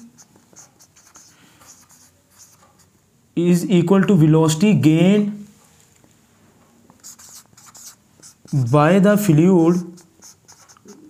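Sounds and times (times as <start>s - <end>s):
marker scratching on whiteboard: 0.0s - 2.9s, 6.9s - 11.0s.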